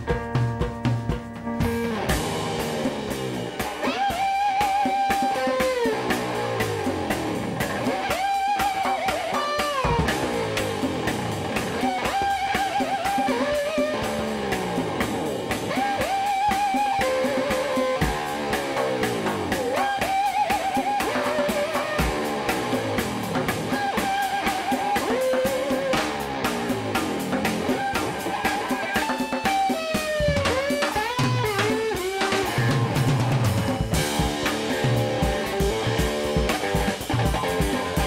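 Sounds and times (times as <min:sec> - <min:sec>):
fast drum beat: 0:00.0 - 0:38.0
guitar riff with slides: 0:00.0 - 0:38.0.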